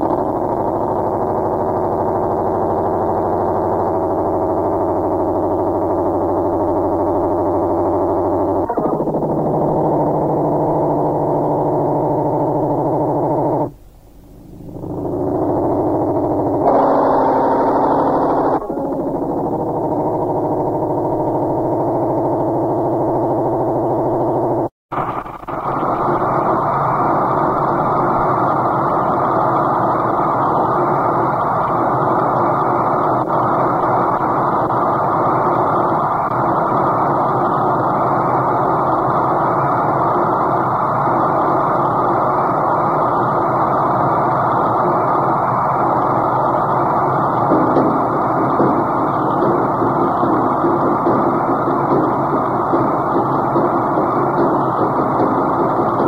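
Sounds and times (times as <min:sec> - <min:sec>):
dense noise drone: 0:00.0 - 0:56.0
synthesizer drone: 0:00.0 - 0:56.0.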